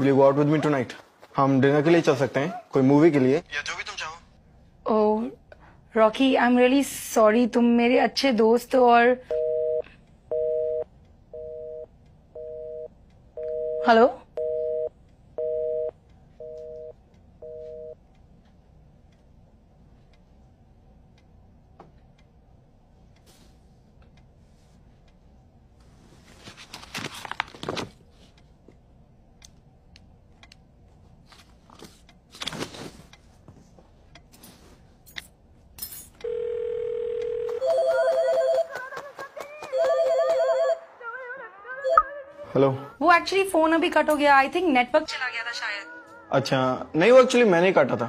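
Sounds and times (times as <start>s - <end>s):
steady telephone tone: 9.3s - 18.0s, 36.2s - 38.8s, 39.7s - 41.0s
telephone busy tone beeps: 36.3s - 38.7s.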